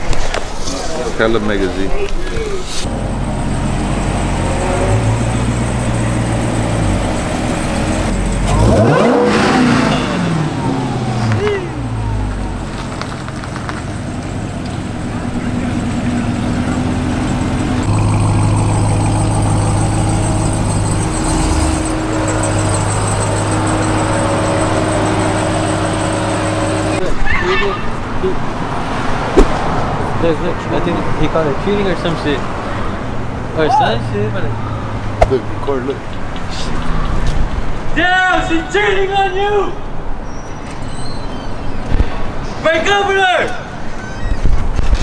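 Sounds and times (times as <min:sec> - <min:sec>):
car engine idling and revving: 0:02.5 - 0:27.1.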